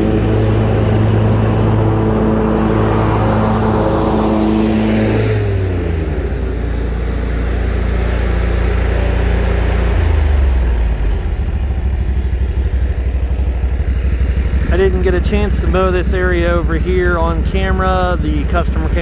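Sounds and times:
mower engine running: 0.0s - 19.0s.

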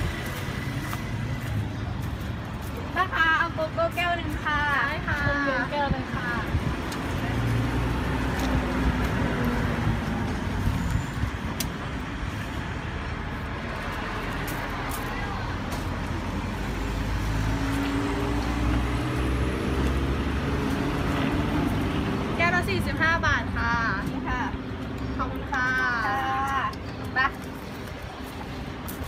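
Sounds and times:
steady traffic noise: 0.0s - 29.0s.

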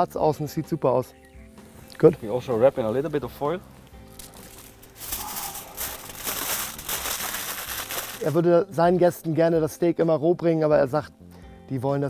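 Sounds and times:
aluminium foil crinkling: 3.8s - 8.4s.

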